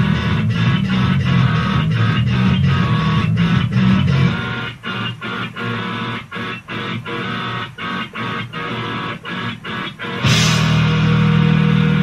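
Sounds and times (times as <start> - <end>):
distorted electric guitar: 0.0 - 12.0
rock band playing: 0.0 - 12.0.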